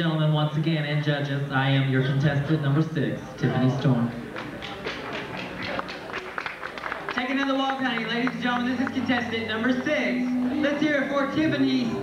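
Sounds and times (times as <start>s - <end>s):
audience applauding: 4.3s - 11.1s.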